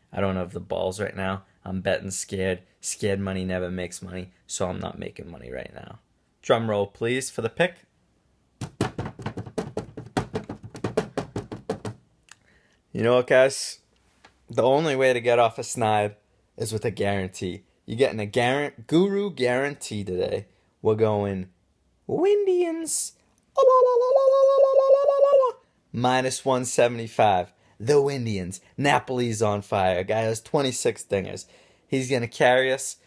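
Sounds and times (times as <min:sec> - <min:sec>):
hands drumming on hard surface: 0:08.6 - 0:12.0
man warbling hand-over-mouth whoop: 0:23.6 - 0:25.6.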